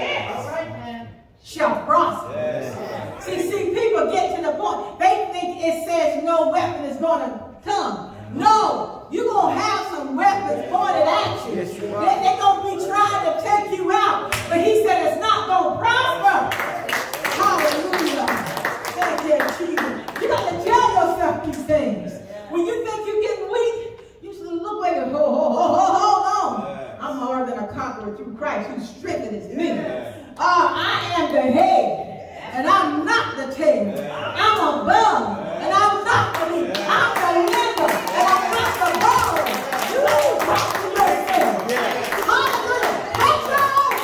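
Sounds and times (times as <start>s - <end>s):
congregation clapping: 16.2s - 20.8s, 36.1s - 44.0s.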